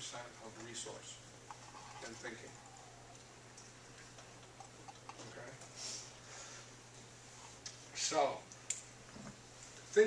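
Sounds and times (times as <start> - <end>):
steady low hum: 0.0 - 10.0
man speaking: 2.0 - 2.9.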